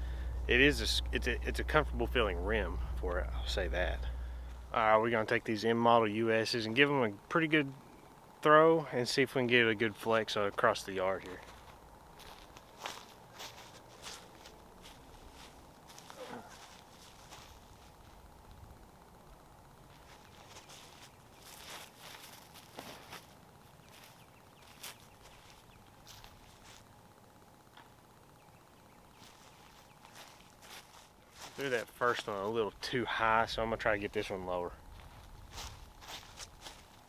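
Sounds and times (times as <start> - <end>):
footsteps on dry grass: 0.0 - 4.9, 11.2 - 18.7, 19.8 - 27.0, 29.1 - 33.2, 33.8 - 37.0.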